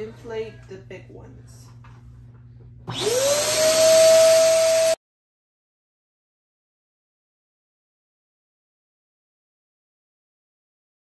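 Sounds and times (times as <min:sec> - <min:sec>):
electric balloon pump whining: 0:02.8 - 0:05.0.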